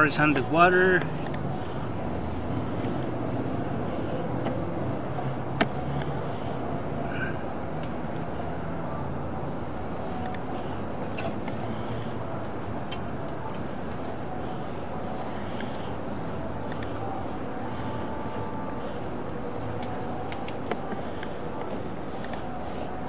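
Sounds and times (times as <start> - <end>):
low mechanical rumble: 0.0 - 23.0.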